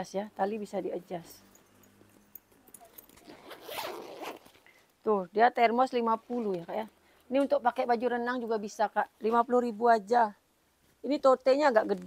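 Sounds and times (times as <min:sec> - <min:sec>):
zipper on fabric bag opening: 0:02.8 - 0:04.6.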